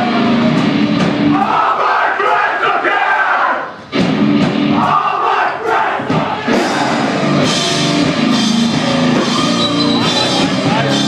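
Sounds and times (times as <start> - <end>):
distorted guitars: 0.0 - 2.9, 3.5 - 11.0
drums: 0.0 - 11.0
many voices shouting together: 1.3 - 3.7, 4.8 - 7.2
shouted vocals: 1.3 - 3.7, 4.8 - 7.3.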